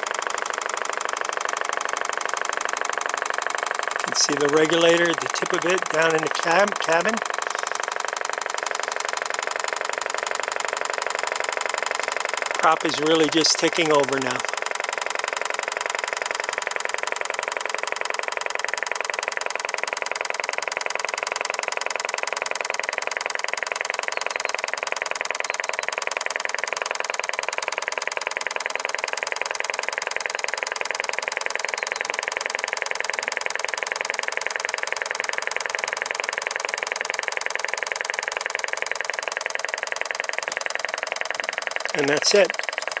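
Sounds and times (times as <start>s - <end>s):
model engine ticking: 0.0s - 43.0s.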